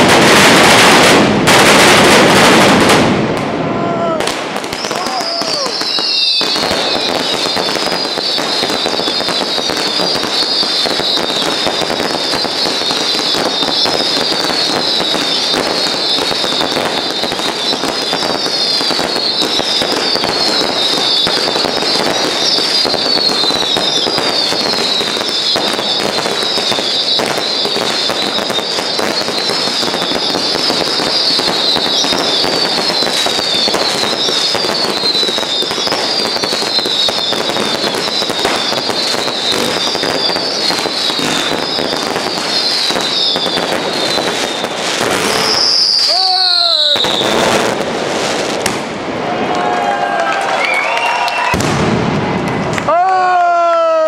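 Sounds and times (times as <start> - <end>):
fireworks crackling and banging: 0.0 - 54.0
falling firework whistles: 4.2 - 48.9, 50.5 - 52.4.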